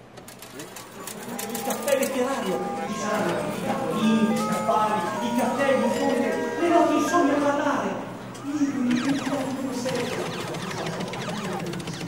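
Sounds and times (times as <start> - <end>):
voices: 0.5 - 12.0
rapid clicking: 9.0 - 12.0.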